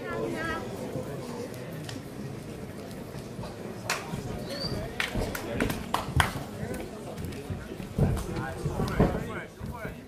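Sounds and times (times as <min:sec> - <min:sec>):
indistinct crowd voices: 0:00.0 - 0:10.0.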